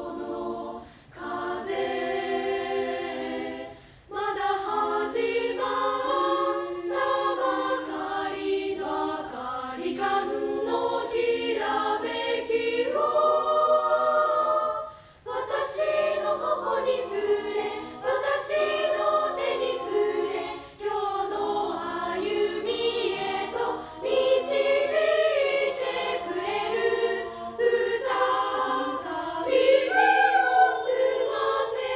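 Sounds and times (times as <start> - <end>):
girls' choir singing unaccompanied: 0.0 - 31.9.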